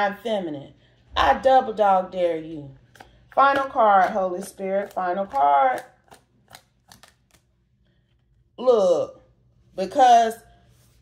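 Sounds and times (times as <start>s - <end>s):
cards being shuffled: 2.8s - 8.2s.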